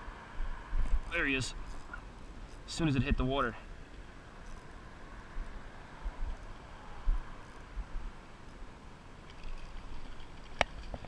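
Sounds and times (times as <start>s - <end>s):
wind and handling rumble: 0.0s - 11.0s.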